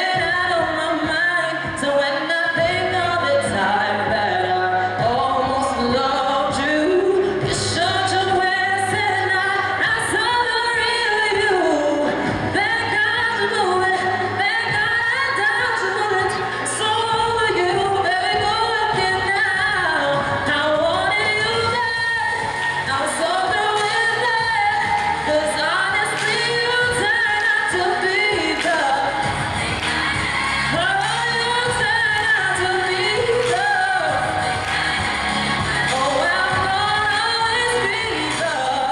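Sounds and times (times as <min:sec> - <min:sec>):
musical accompaniment: 0:00.0 - 0:38.9
person singing into microphone: 0:00.0 - 0:38.9.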